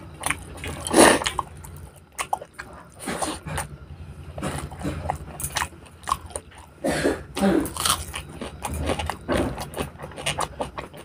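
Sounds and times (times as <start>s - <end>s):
man chewing food: 0.0s - 11.0s.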